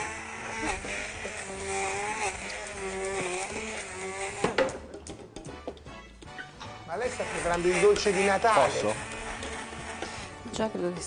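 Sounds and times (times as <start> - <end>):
immersion blender motor whine: 0.0 - 4.8, 6.9 - 11.0.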